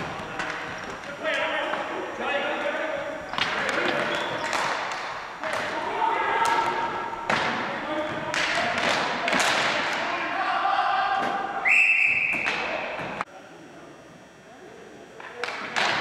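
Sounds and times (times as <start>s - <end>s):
players calling out: 0.0s - 13.4s
referee's whistle blast: 11.6s - 12.6s.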